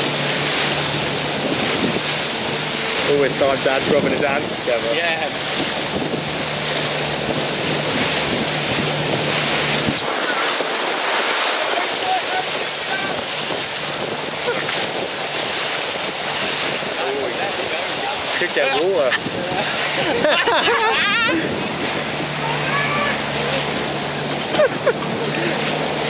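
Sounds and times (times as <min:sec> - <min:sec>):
water splashing against boat hull: 0:00.0 - 0:26.0
wind buffeting microphone: 0:00.0 - 0:26.0.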